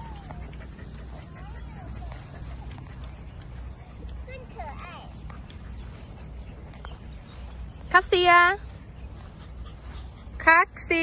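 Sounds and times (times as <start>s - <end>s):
woman calling a dog: 10.4s - 11.0s.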